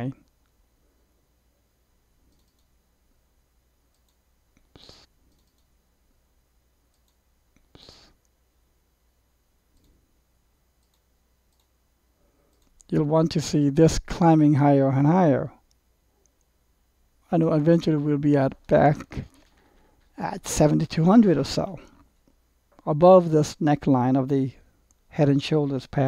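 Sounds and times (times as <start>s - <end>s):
computer mouse clicks: 2.3s - 2.7s, 3.9s - 5.7s, 6.9s - 8.0s, 10.8s - 11.8s, 12.5s - 12.9s
faint ticks: 2.3s - 2.7s, 3.9s - 5.7s, 6.9s - 8.4s, 10.8s - 11.8s, 12.5s - 12.9s.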